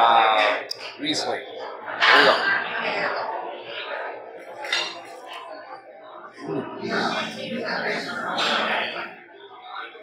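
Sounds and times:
dishes and cutlery clinking: 4.4 - 5.6, 8.0 - 9.0.

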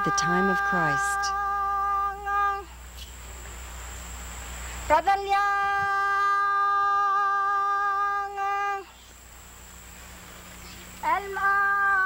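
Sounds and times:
high voice singing held note: 0.0 - 2.7.

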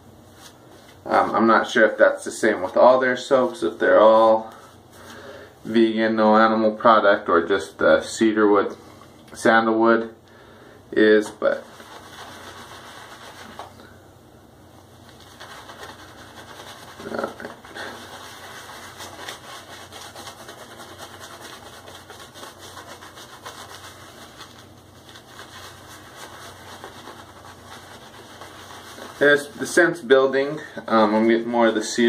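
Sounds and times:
shaving brush swishing lather: 11.4 - 13.8, 15.0 - 32.0.

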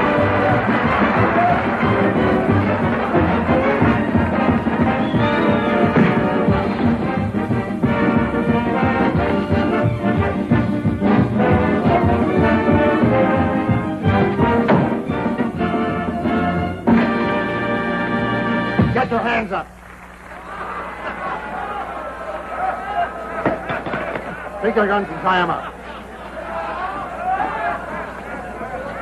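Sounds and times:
orchestral music with brass: 0.0 - 19.1.

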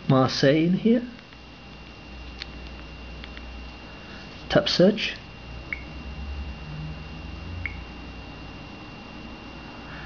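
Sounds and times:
faint steady high whine: 0.0 - 10.0
touchscreen tap blip: 7.6 - 7.8.

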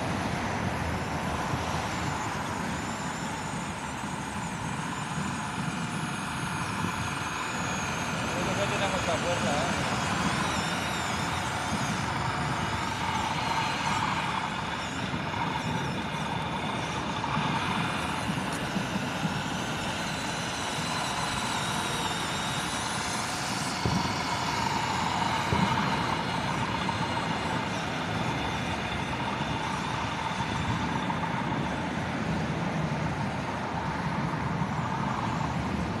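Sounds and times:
faint wavering whine: 0.0 - 36.0
toy bulldozer running: 0.0 - 36.0.

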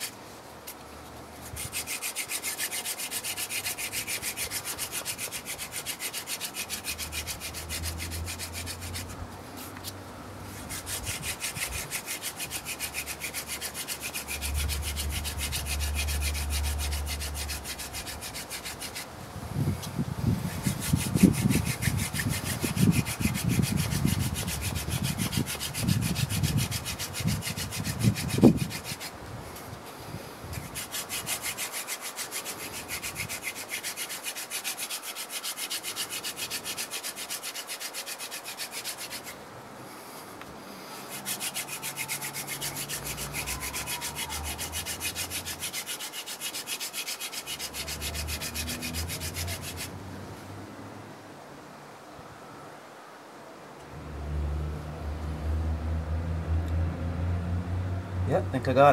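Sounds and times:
wooden spindle rasping on board: 1.4 - 9.9, 10.6 - 19.1, 20.4 - 29.1, 30.5 - 39.4, 41.1 - 49.9.

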